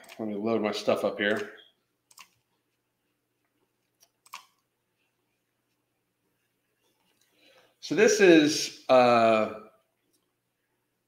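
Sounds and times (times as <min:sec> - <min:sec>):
computer mouse clicks: 0:01.3 - 0:02.4, 0:03.9 - 0:04.7.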